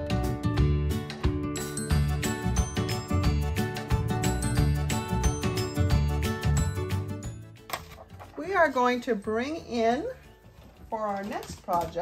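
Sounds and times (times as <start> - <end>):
upbeat music with chiming notes: 0.6 - 7.7.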